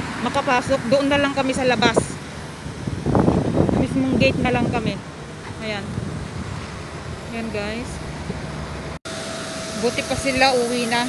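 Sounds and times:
jet turbine whine and hiss: 9.1s - 11.0s.

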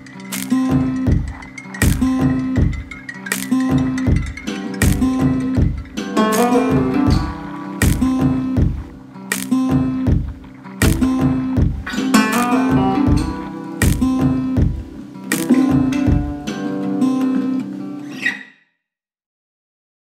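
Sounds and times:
strummed acoustic guitar chords: 0.0s - 18.1s
bass line: 0.7s - 2.9s, 3.7s - 9.0s, 9.7s - 15.0s, 15.7s - 16.4s.

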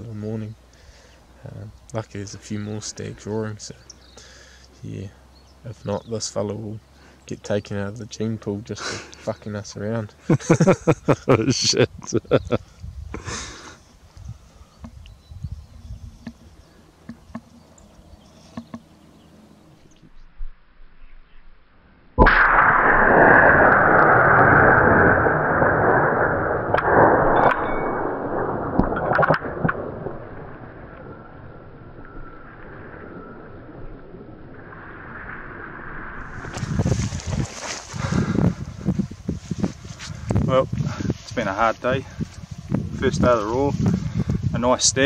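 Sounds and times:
rifle shot with rolling echo: 22.2s - 31.2s.

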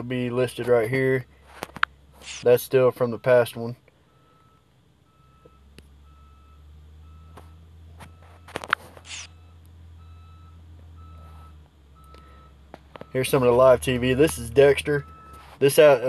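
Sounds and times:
steady low hum: 0.0s - 16.0s
short high electronic beeps: 9.1s - 9.6s.

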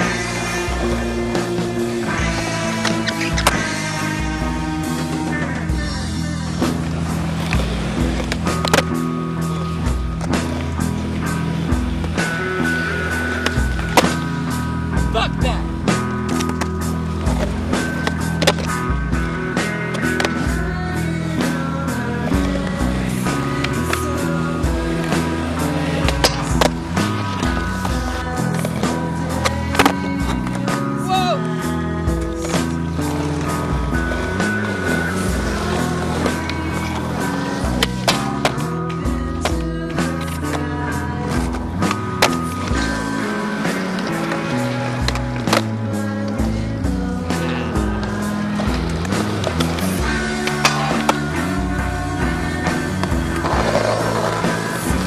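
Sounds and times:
background music with steady beat: 0.0s - 55.0s
skateboard wheels rolling on concrete: 0.0s - 55.0s
skateboard clacking on ground: 6.7s - 9.1s, 16.2s - 18.8s, 22.2s - 30.9s, 32.2s - 46.6s, 47.3s - 52.0s.

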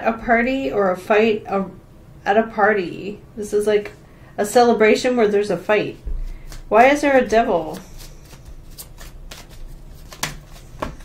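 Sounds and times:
cards clicking: 7.7s - 11.0s.

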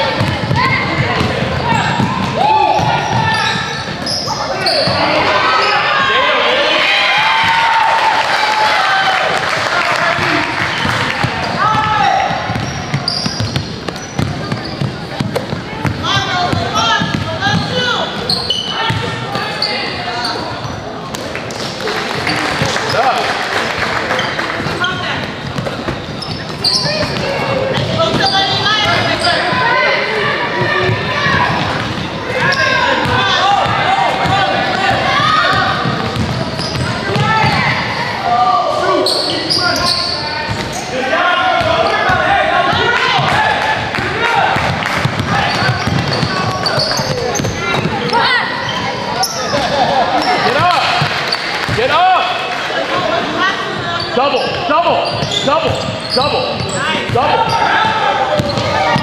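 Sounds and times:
basketball bouncing on wooden floor: 12.5s - 17.8s, 31.6s - 37.6s, 44.6s - 48.1s, 58.3s - 59.0s
voices calling out: 21.7s - 59.0s.

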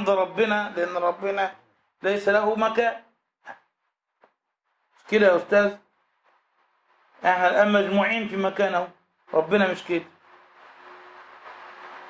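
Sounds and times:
faint hiss: 4.8s - 12.0s.

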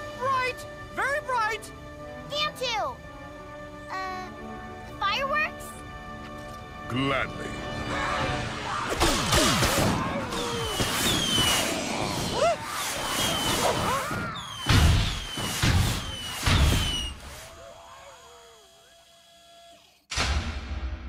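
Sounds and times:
cartoon firework whistles: 8.8s - 20.1s
heavy firework bangs: 14.4s - 17.5s.

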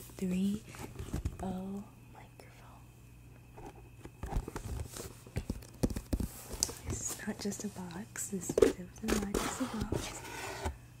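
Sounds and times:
cardboard box knocks and scrapes: 9.2s - 10.8s.

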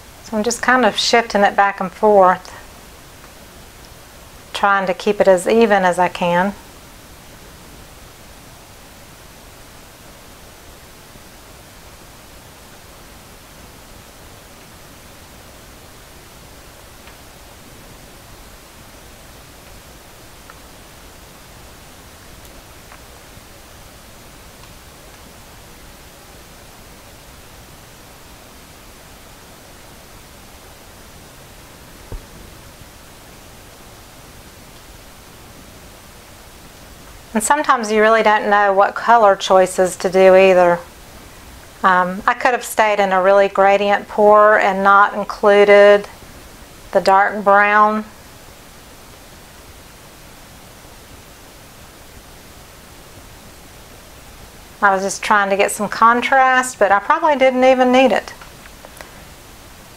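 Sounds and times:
steady background hiss: 0.0s - 59.9s.

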